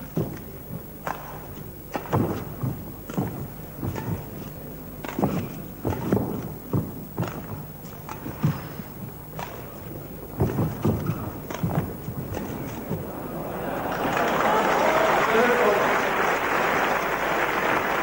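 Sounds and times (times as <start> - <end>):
footsteps on court: 0.0 - 18.0
rackets striking shuttlecock: 1.0 - 13.4.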